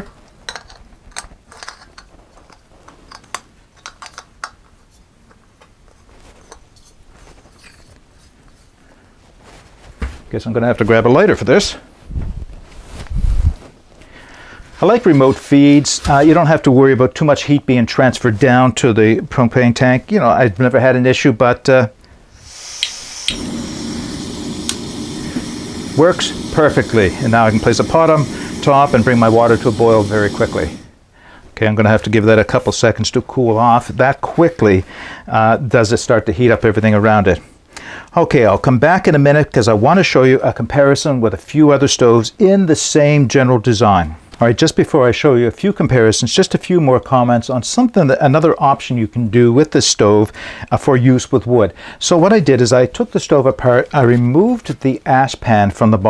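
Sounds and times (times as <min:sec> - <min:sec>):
gas canister clicks and scrapes: 0:00.5 - 0:04.6, 0:24.3 - 0:30.7
gas hissing: 0:22.3 - 0:31.6
burner rushing flame: 0:22.4 - 0:31.0
lighter clicks: 0:22.7 - 0:26.5.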